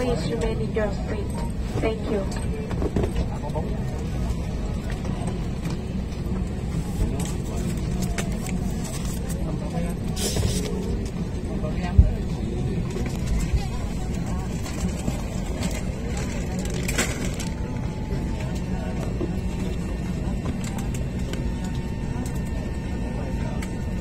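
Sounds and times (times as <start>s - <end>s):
airliner cabin engine drone: 0.0s - 24.0s
passengers talking faintly: 0.0s - 24.0s.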